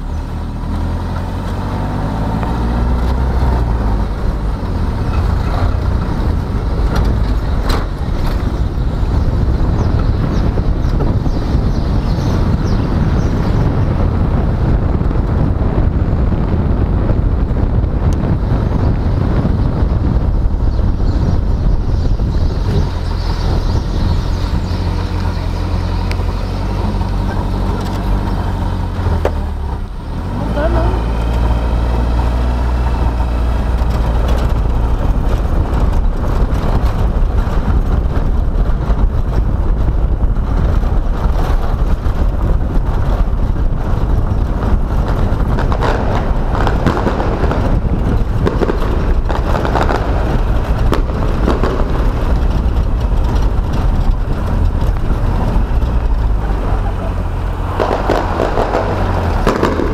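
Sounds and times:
car engine and road noise: 0.0 - 59.9
wind rumble on microphone: 0.0 - 59.9.

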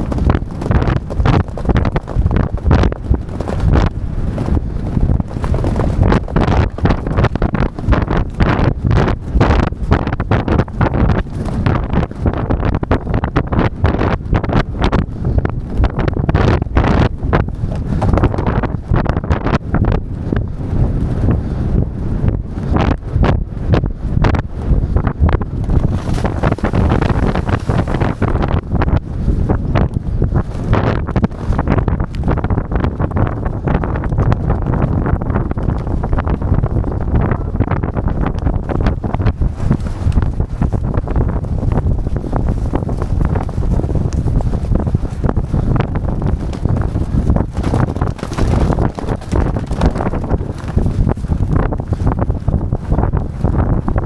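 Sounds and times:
hooves thudding on turf: 0.0 - 13.4, 14.6 - 19.2, 25.3 - 36.8, 38.2 - 53.8
wind buffeting microphone: 0.0 - 54.0.

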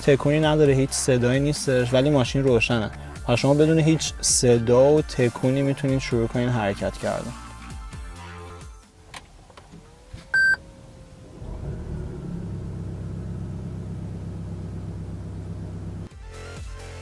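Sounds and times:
steady low hum: 10.4 - 16.1.

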